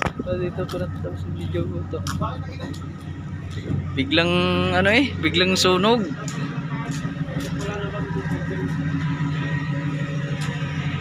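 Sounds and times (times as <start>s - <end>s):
ferry engines humming: 0.0s - 11.0s.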